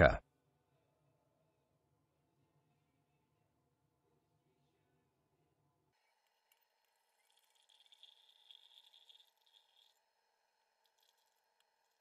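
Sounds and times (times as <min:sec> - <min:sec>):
liquid trickling into a glass: 0:06.1 - 0:12.0.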